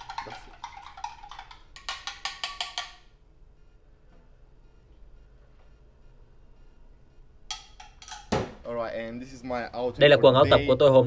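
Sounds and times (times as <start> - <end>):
man speaking: 8.7 - 11.0.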